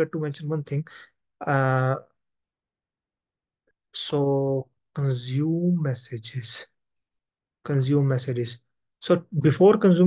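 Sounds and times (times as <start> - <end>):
man speaking: 0.0 - 2.0, 4.0 - 6.7, 7.7 - 10.0.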